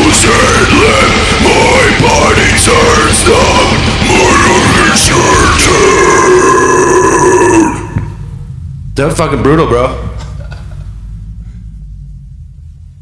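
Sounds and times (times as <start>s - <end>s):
man growling and screaming: 0.0s - 8.2s
metal music: 0.0s - 13.0s.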